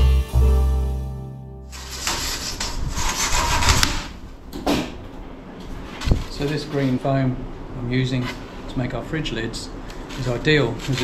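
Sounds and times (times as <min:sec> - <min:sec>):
foam sheet scraping and rubbing: 0:01.7 - 0:04.2.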